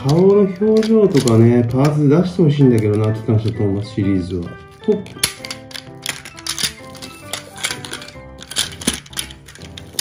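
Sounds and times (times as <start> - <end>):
plastic toy train clicks: 0.0 - 3.6, 5.0 - 10.0
background music with held notes: 0.0 - 10.0.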